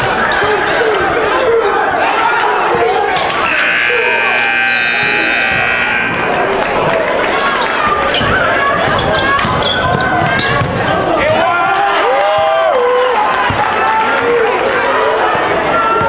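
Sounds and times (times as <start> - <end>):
crowd chatter: 0.0 - 16.0
scoreboard horn steady tone: 3.2 - 6.7.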